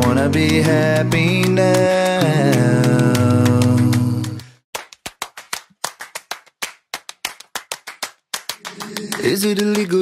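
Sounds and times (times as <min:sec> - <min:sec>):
rhythmic hand claps: 0:00.0 - 0:10.0.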